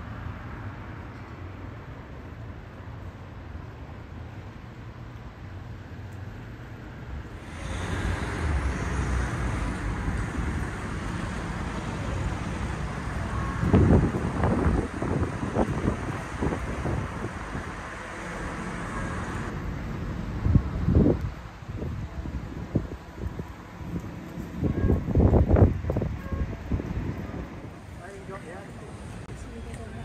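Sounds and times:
street traffic: 0.0s - 30.0s
wind gusts on microphone: 7.2s - 30.0s.

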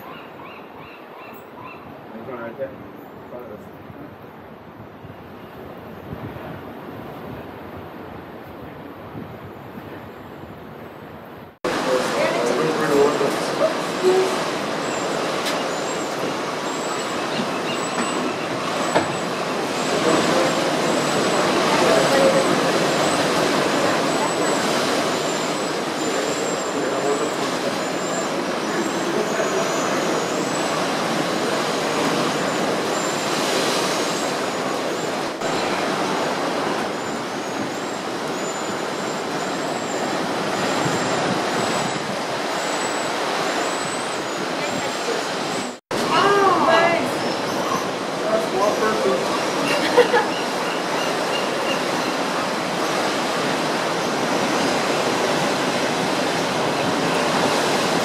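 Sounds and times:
ocean surf washing over rocks: 11.6s - 58.0s.

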